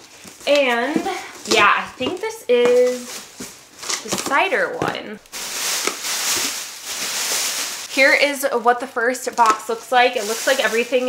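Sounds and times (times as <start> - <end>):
plastic bag crinkling: 0.1 - 8.4, 9.2 - 11.0.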